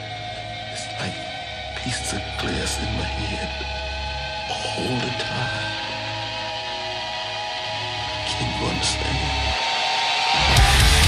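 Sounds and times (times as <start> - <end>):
electric guitar sustained chord: 0.0 - 11.0.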